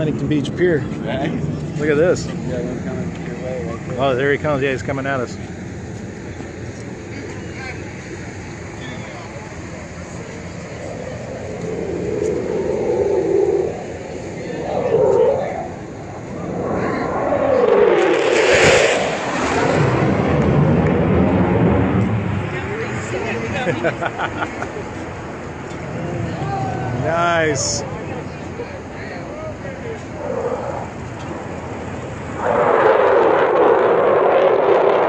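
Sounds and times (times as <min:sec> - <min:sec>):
jet flying low past: 0:00.0 - 0:35.0
low rumble: 0:09.2 - 0:23.6.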